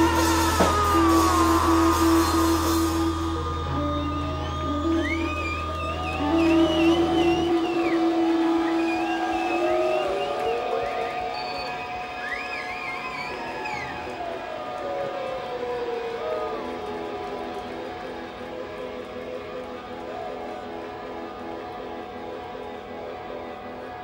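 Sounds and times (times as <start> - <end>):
droning electronic and guitar tones: 0.0 - 24.0.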